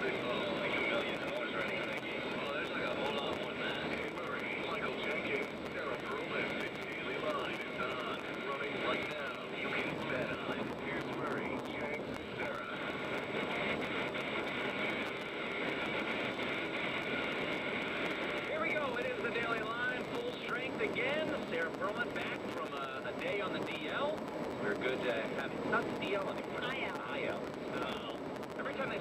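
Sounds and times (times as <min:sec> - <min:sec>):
steady noisy background: 0:00.0 - 0:29.0.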